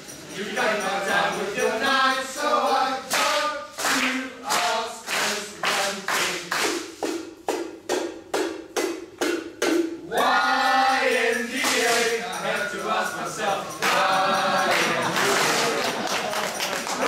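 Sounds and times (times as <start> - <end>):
rhythmic hand claps: 0.0 - 17.0.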